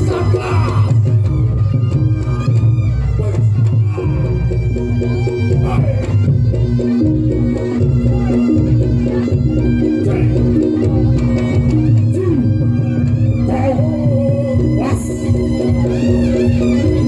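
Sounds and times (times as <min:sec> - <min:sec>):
drum strokes: 0:00.0 - 0:17.0
gamelan music: 0:00.0 - 0:17.0.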